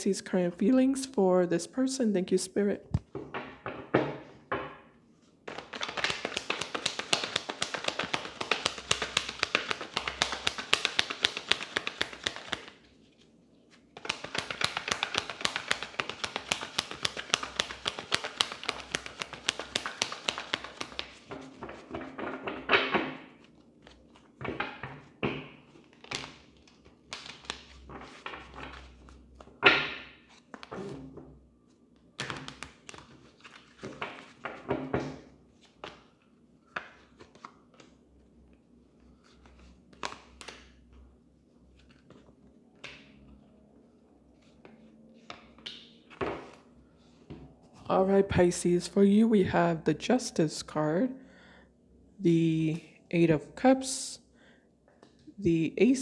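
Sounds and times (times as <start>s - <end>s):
cards tapping and knocking: 5.5s - 12.8s, 14.0s - 30.9s, 32.2s - 35.2s
cards being shuffled: 5.5s - 22.4s, 23.4s - 24.7s, 25.7s - 29.5s, 32.2s - 34.6s, 35.5s - 38.0s, 39.1s - 40.8s.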